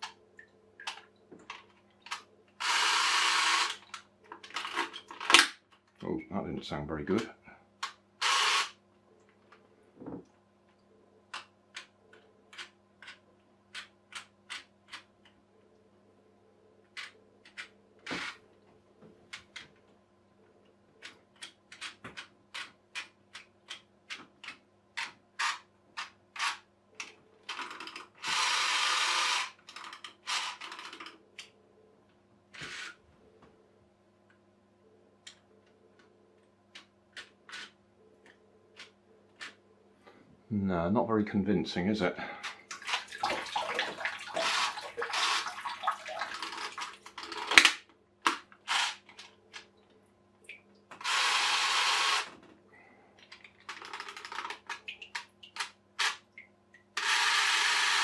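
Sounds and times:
clockwork motor whirring: 0:02.6 - 0:03.8, 0:08.2 - 0:08.7, 0:28.2 - 0:29.6, 0:51.0 - 0:52.3, 0:57.0 - 0:58.0.

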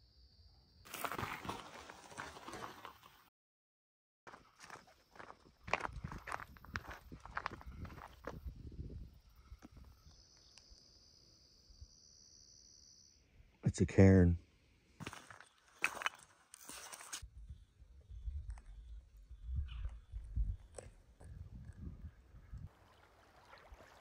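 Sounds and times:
footsteps on gravel: 0:00.9 - 0:03.1, 0:04.3 - 0:08.4, 0:15.0 - 0:17.2
high insect trill: 0:04.6 - 0:13.4.

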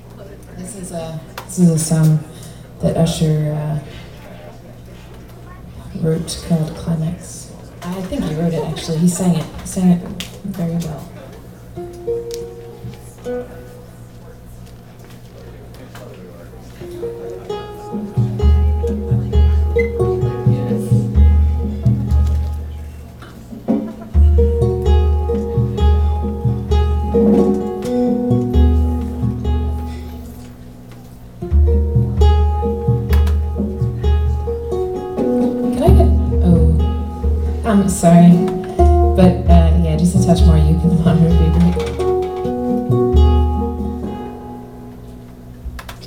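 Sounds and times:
steady low hum: 0:05.4 - 0:45.8
ukulele note plucked: 0:16.8 - 0:23.0, 0:23.8 - 0:30.6, 0:31.4 - 0:44.9
deep held low notes: 0:35.7 - 0:41.9.

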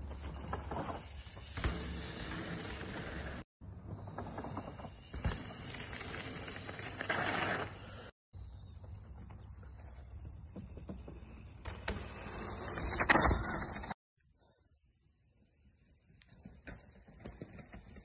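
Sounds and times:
mountain bike tyre rush: 0:00.0 - 0:03.4, 0:04.0 - 0:08.1
bike knocks and rattles: 0:00.0 - 0:07.4.

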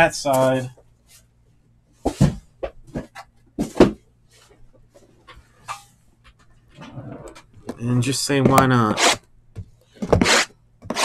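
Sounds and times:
boxes thumping on table: 0:02.1 - 0:04.0.

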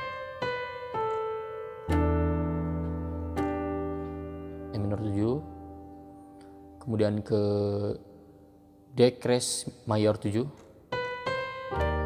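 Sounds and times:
slow piano notes and chord: 0:00.0 - 0:09.0, 0:10.8 - 0:12.0.

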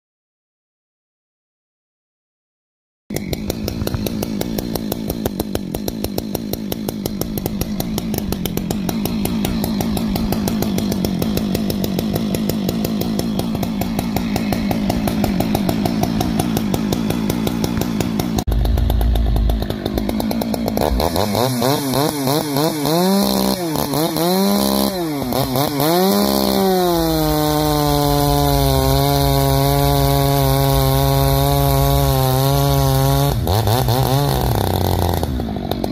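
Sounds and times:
chainsaw engine idling: 0:03.1 - 0:35.9
short deep rumble: 0:18.5 - 0:21.2.

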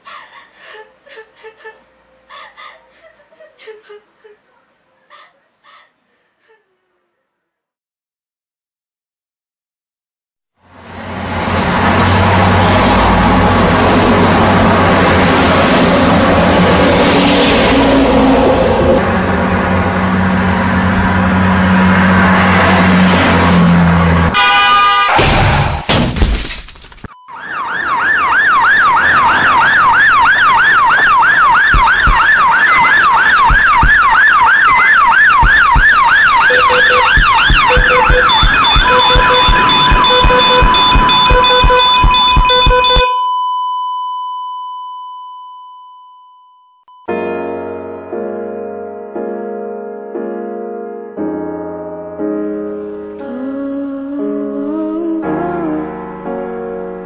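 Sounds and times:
loud road traffic: 0:10.6 - 0:25.8, 0:27.3 - 0:43.1
ambulance siren yelping: 0:27.3 - 0:43.1
heart monitor beeps: 0:31.7 - 0:32.2, 0:35.4 - 0:47.1
steady held tone: 0:35.4 - 0:43.1.

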